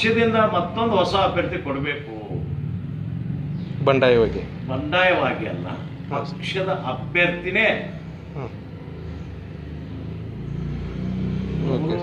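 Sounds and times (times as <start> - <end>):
low vehicle rumble: 0.0 - 12.0.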